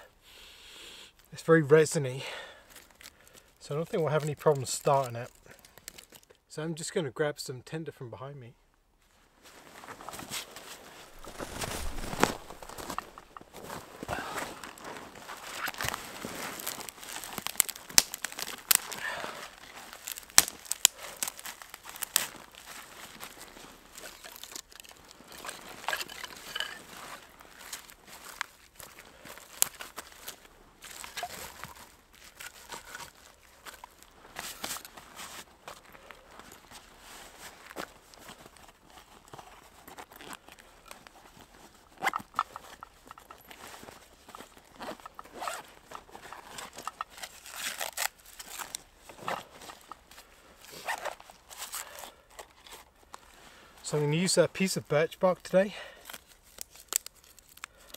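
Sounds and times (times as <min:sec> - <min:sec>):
dry tinder crinkling: 0:02.7 - 0:06.4, 0:09.6 - 0:53.4, 0:55.4 - 0:57.9.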